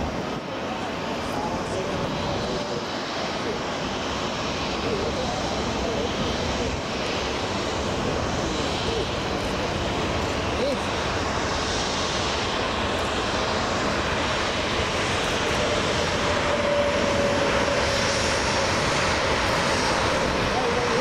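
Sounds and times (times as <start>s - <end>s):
faint engine whine: 0.0s - 21.0s
jet engines roaring: 0.0s - 21.0s.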